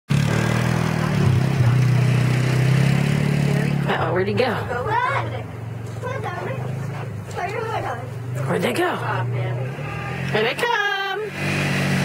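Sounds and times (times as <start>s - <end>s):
quad bike engine running: 0.1s - 12.0s.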